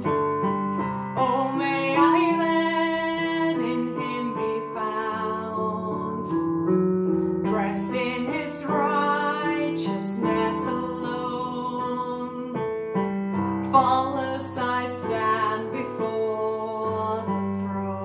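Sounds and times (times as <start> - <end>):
digital piano chords: 0.0 - 18.0
woman singing worship song: 1.0 - 6.4, 7.5 - 12.6, 13.6 - 18.0.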